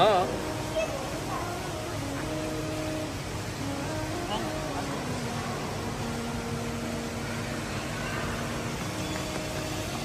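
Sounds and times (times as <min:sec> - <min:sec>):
large indoor space hiss: 0:00.0 - 0:10.0.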